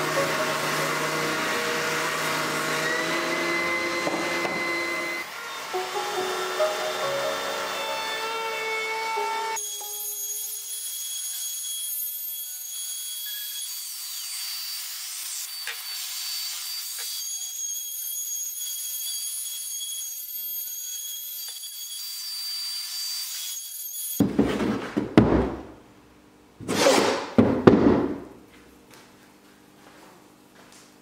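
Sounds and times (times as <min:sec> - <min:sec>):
router whining: 0:00.0 - 0:24.2.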